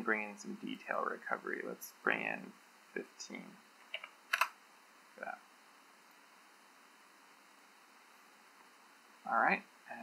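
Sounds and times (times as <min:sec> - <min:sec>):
computer keyboard keystrokes: 0:03.9 - 0:04.5.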